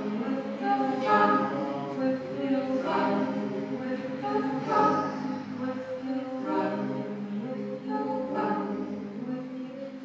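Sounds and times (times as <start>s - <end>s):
choir holding long notes: 0.0s - 10.0s.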